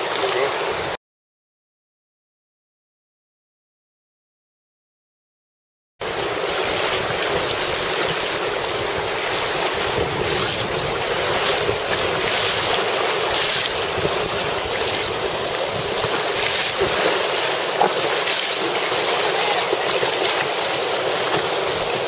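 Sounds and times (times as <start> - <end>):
choppy river water: 0.0 - 1.0, 6.0 - 22.0
wind buffeting microphone: 6.0 - 22.0.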